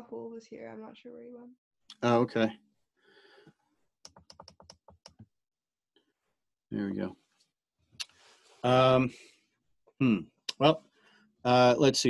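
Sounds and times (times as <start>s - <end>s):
faint keyboard typing: 4.0s - 5.3s.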